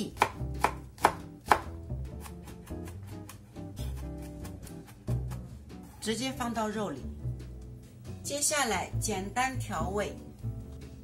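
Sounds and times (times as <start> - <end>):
knife chopping on cutting board: 0.0 - 5.6.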